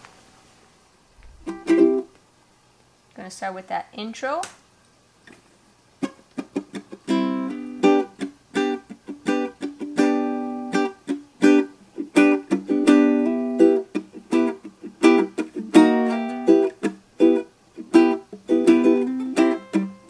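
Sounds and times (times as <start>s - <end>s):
ukulele strumming: 1.2s - 2.2s, 6.0s - 20.0s.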